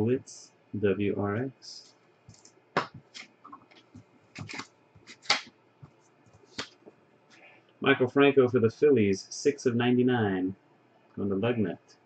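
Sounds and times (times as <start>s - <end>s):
trading cards snapping and clicking: 2.3s - 5.5s.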